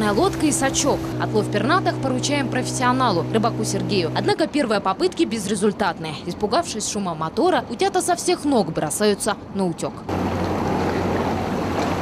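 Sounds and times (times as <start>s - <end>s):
rushing water: 0.0s - 4.2s, 10.1s - 12.0s
motorboat engine running: 0.0s - 5.3s, 10.1s - 12.0s.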